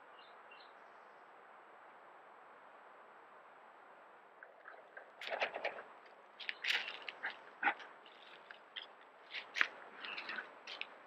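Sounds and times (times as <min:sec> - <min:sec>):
bear crunching and scraping: 0:04.9 - 0:11.0.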